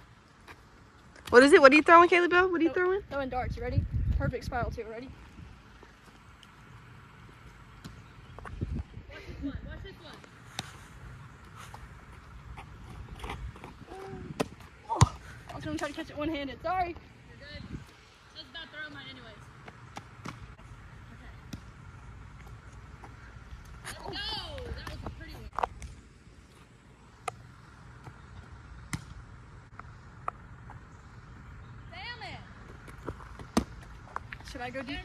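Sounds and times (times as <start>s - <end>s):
wind rumble on microphone: 3.0s - 5.6s, 8.4s - 10.1s, 12.9s - 14.6s, 17.4s - 17.9s.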